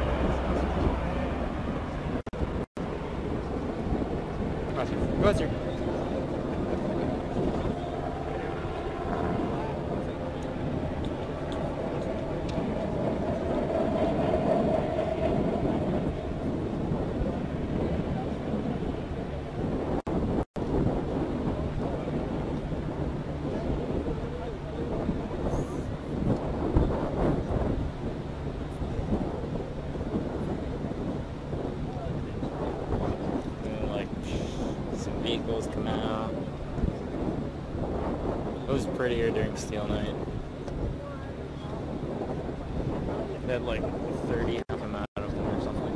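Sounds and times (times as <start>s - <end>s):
hovercraft engine rumble: 0.0s - 45.9s
sustained turbine whine: 0.0s - 45.9s
wind buffeting microphone: 0.0s - 45.9s.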